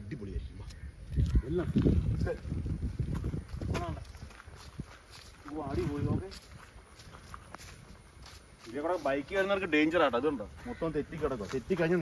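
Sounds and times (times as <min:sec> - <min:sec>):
footsteps on dirt and grass: 0:00.6 - 0:12.0.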